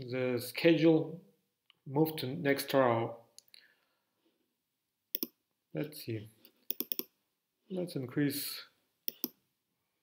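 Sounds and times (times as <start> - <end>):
man speaking: 0.0 - 1.2, 1.8 - 3.2, 5.7 - 6.4, 7.7 - 8.8.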